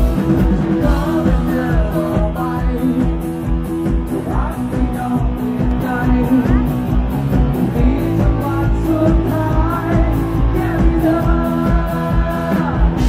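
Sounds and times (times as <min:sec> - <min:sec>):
drums with cymbal strokes: 0:00.0 - 0:13.0
electric guitar: 0:00.0 - 0:13.0
man singing: 0:00.0 - 0:13.0.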